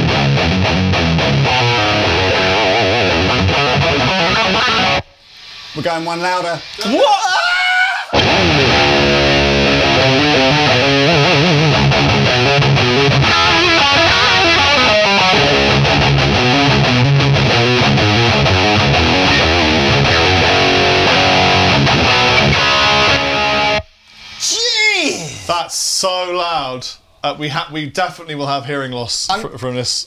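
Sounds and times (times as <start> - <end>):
distorted electric guitar riffing: 0.0 - 5.2, 8.1 - 23.9.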